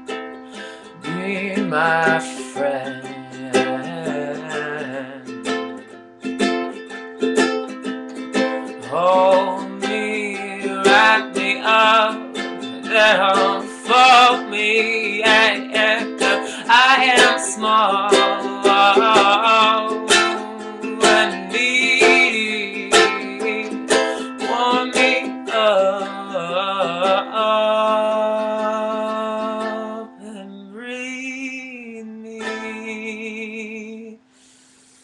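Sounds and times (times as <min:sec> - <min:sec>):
ukulele strumming: 0:00.0 - 0:34.1
man singing with vibrato: 0:00.0 - 0:34.3.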